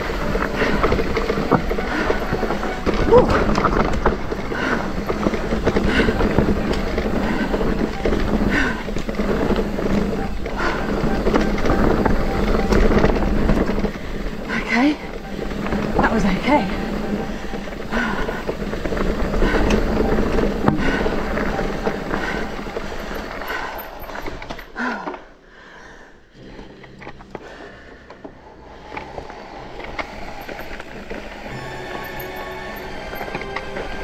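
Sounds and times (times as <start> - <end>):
tyres rattling on dirt trail: 0.0 - 25.4, 26.6 - 34.0.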